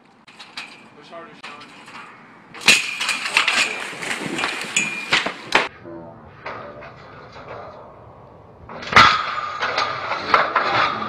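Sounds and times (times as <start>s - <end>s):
churning water: 2.6s - 5.7s.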